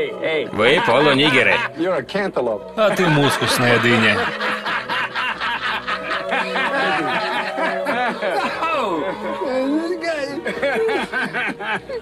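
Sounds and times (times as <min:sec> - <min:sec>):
man laughing: 0:00.6 - 0:01.8, 0:03.0 - 0:09.4, 0:10.4 - 0:12.0.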